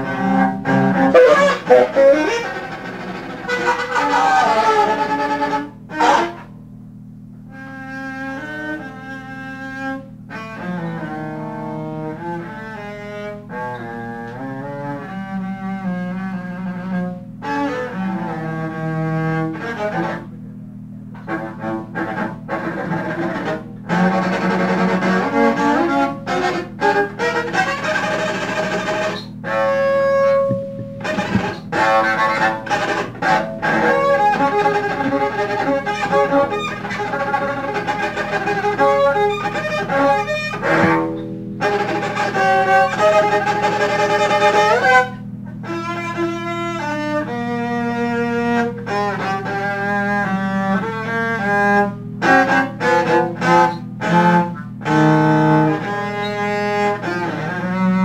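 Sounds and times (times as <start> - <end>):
saxophone: 0.0 - 6.6, 7.4 - 20.4, 21.2 - 58.0
bowed double bass: 0.0 - 58.0.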